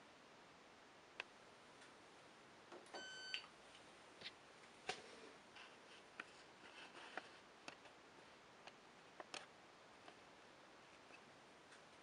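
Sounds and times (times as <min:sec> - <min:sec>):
washing machine beep: 0:03.0 - 0:03.5.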